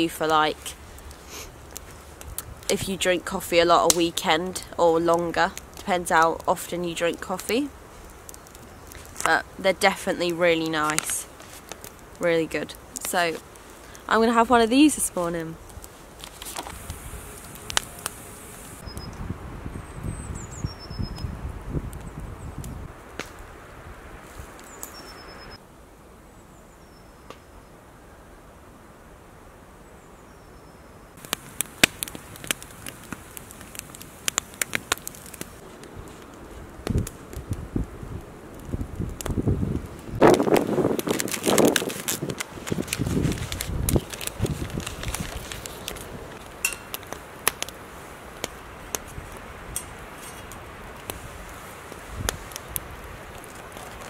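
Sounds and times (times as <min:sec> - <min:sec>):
wood fire crackling: 0:00.0 - 0:25.6, 0:31.2 - 0:54.0
rustling and handling noise: 0:05.6 - 0:14.1, 0:14.8 - 0:18.8, 0:40.2 - 0:54.0.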